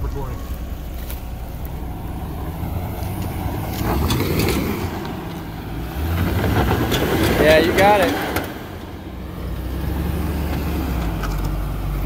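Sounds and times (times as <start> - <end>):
engine under load: 0.0 - 12.0.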